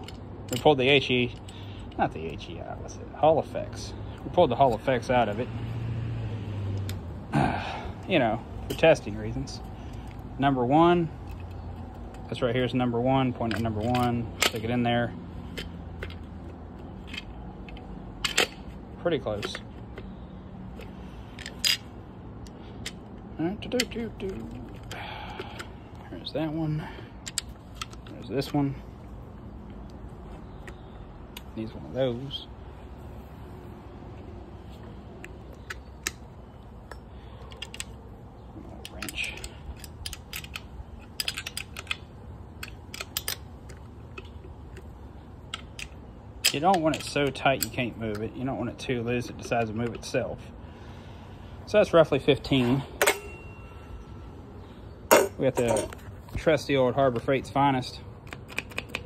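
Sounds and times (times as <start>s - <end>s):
low steady hum: 0.0s - 59.0s
wrench clicking on bolt: 15.5s - 18.7s, 38.7s - 48.3s.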